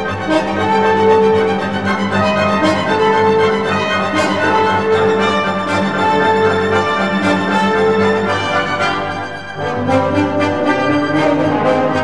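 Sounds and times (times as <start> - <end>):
orchestra playing held chords: 0.0 - 12.0.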